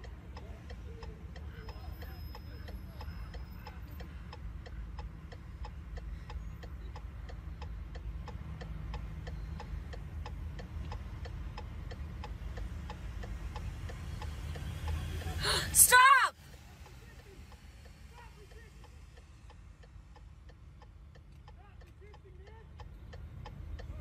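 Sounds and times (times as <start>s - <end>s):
mechanical ticking: 0.0s - 15.3s.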